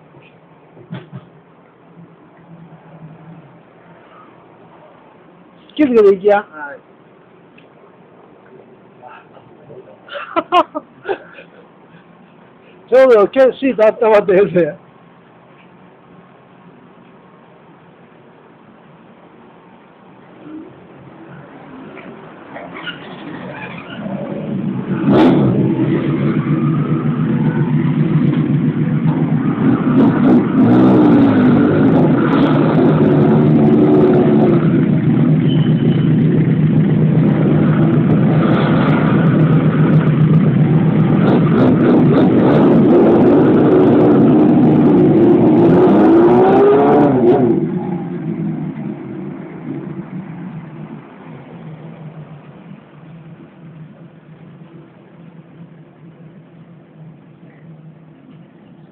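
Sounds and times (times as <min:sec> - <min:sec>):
motorcycle engines revving: 0:20.4 - 0:54.4
motorcycles pulling away: 0:22.4 - 0:52.3.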